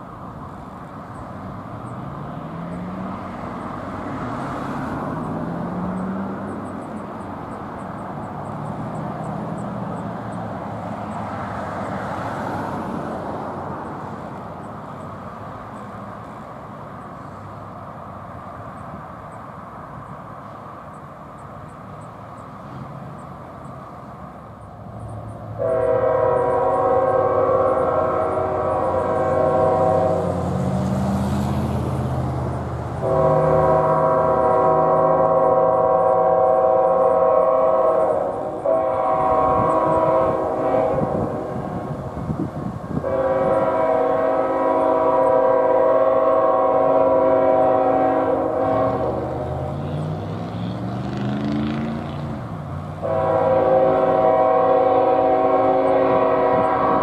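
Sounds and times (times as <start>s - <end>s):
diesel engine rumbling: 0.0s - 57.0s
locomotive air horn blasts: 25.6s - 30.9s, 33.0s - 51.0s, 53.0s - 57.0s.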